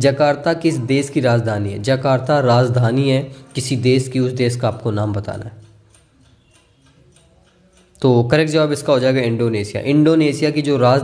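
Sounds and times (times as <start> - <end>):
steady countdown ticking: 0.0 - 11.0.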